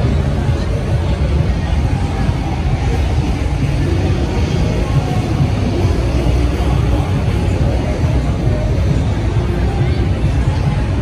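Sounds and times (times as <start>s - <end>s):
people's voices: 0.0s - 11.0s
traffic rumble: 0.0s - 11.0s.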